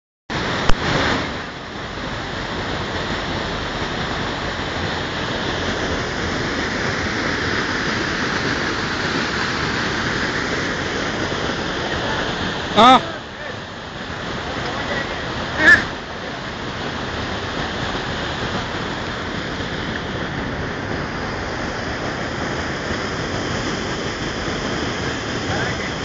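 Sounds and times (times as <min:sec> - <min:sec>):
river rushing over rocks: 0:00.4 - 0:26.0.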